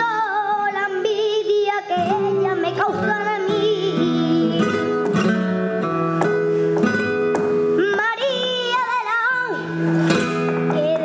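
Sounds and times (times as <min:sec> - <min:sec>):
girl singing: 0:00.0 - 0:05.2, 0:07.7 - 0:09.9, 0:10.5 - 0:11.0
flamenco guitar: 0:00.0 - 0:11.0.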